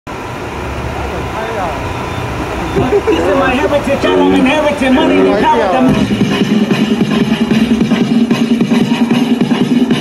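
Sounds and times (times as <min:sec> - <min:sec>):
hip-hop club track over loudspeakers: 0:02.8 - 0:10.0
spoken vocal intro: 0:03.2 - 0:06.1.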